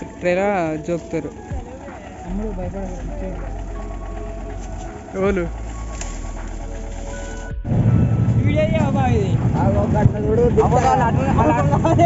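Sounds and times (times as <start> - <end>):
moving vehicle rumble: 0.0 - 12.0
vehicle low hum: 0.0 - 12.0
voices: 0.0 - 12.0.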